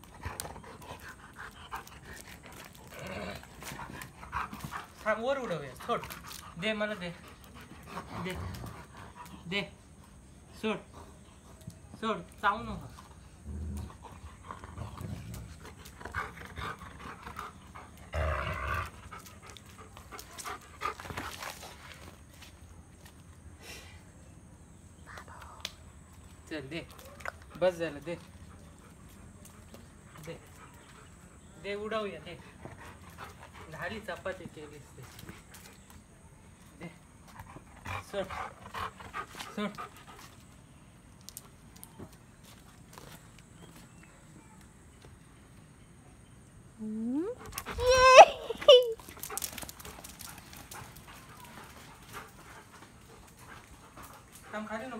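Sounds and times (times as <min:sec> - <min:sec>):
dog panting: 0:00.0 - 0:03.0, 0:03.6 - 0:10.2, 0:13.9 - 0:18.1, 0:27.5 - 0:35.8, 0:37.2 - 0:40.6, 0:49.1 - 0:54.9
dog growling in play: 0:02.4 - 0:04.2, 0:13.4 - 0:16.8, 0:18.0 - 0:19.3.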